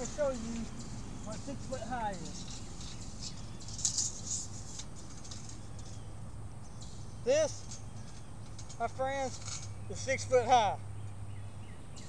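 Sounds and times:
scraping rattling handling sounds: 0.0s - 6.2s, 6.8s - 10.0s
low steady outdoor hum: 0.0s - 12.0s.

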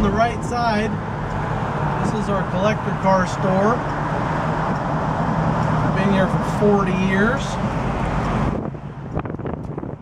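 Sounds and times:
road and engine rumble: 0.0s - 10.0s
wind buffeting microphone: 7.6s - 10.0s.

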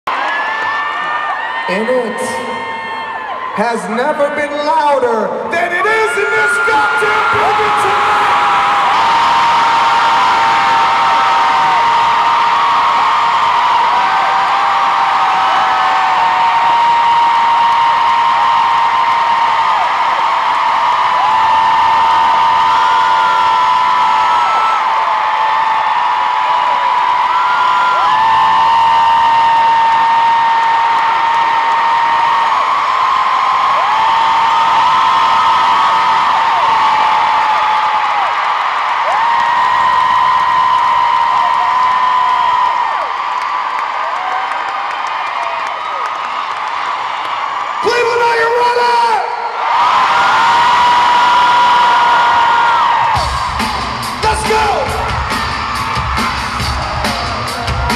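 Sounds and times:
crowd screaming and cheering: 0.0s - 57.9s.

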